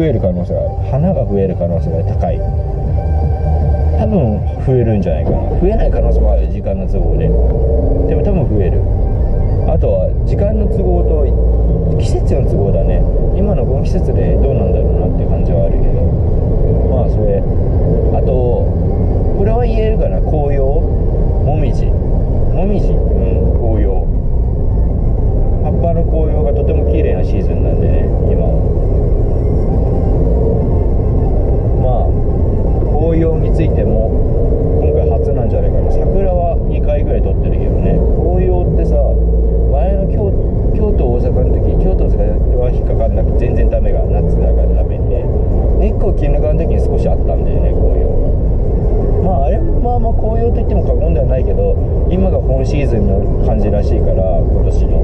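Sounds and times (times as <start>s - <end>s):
man talking: 0.0s - 2.6s, 3.9s - 8.9s, 9.6s - 24.2s, 25.6s - 28.8s, 31.7s - 32.2s, 32.8s - 48.3s, 49.2s - 55.0s
car engine rumble: 0.0s - 55.0s
road noise inside car: 0.0s - 55.0s.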